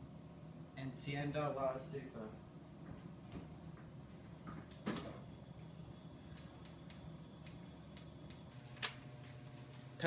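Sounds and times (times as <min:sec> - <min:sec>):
light clicks: 0:06.3 - 0:09.0.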